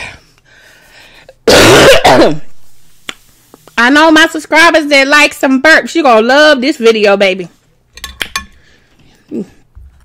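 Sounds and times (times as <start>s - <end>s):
woman coughing: 1.4s - 2.6s.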